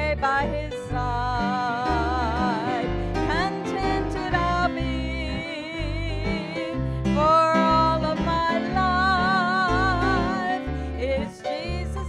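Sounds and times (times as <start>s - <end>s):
acoustic guitar accompaniment: 0.0s - 12.0s
woman singing gospel: 0.0s - 12.0s.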